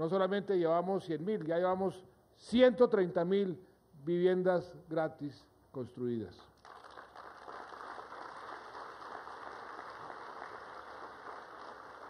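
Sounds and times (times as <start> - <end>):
audience applauding: 6.6 - 12.0.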